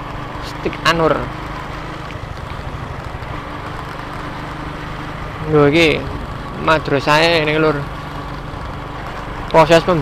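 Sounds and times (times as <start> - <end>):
road noise: 0.0 - 10.0
vehicle engine humming: 0.0 - 10.0.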